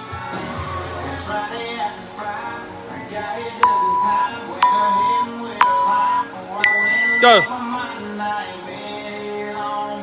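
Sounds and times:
background music: 0.0 - 10.0
interval timer beeps: 3.6 - 7.5.

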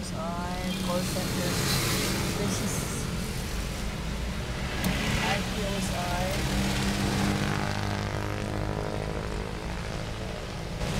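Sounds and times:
steady engine hum: 0.0 - 10.9
traffic low rumble: 0.0 - 10.9.

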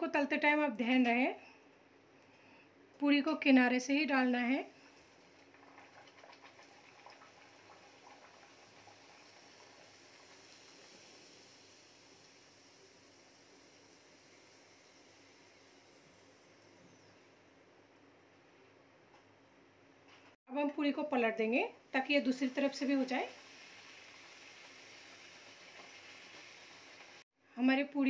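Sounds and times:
bread sizzling in hot oil: 4.8 - 16.6, 22.3 - 27.3.

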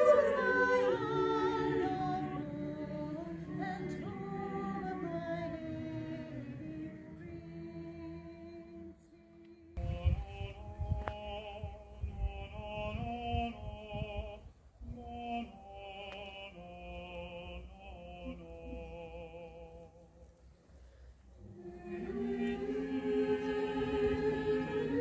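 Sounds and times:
choir singing: 0.0 - 13.7, 21.4 - 25.0
low rumbling on microphone: 9.8 - 15.3.

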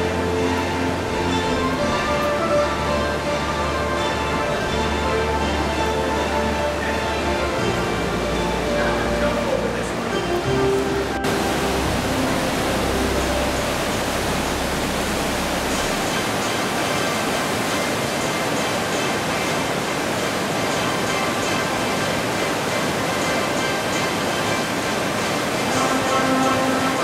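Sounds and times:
quiet music: 0.0 - 27.0
river rapids rushing: 0.0 - 27.0.

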